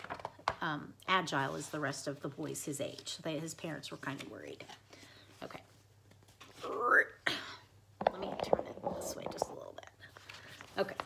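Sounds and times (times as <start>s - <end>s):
paper page rustling: 10.1s - 11.0s.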